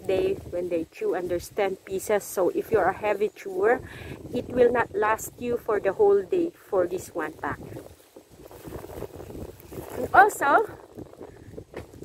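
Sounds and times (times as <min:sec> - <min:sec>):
wind buffeting microphone: 0:00.0 - 0:12.0
plastic bags rustling: 0:06.9 - 0:12.0.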